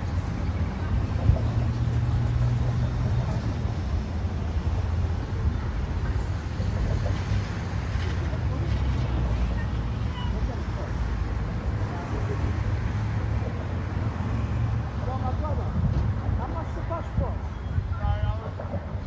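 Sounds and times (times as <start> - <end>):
vehicles driving past: 0.0 - 19.0.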